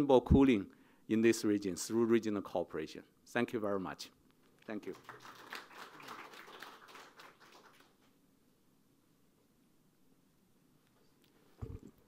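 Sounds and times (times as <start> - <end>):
audience applause: 4.8 - 8.0.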